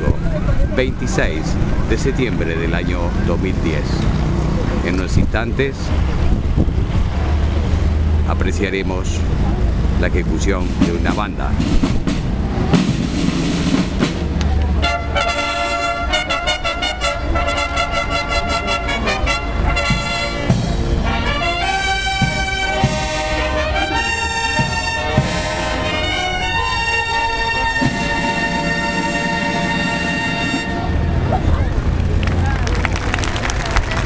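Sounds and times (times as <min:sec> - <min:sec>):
brass band playing: 0:10.4 - 0:32.0.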